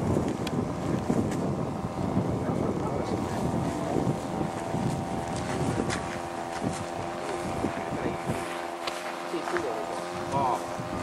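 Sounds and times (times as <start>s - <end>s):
model airplane motor droning: 0.0s - 11.0s
wind on microphone: 0.0s - 11.0s.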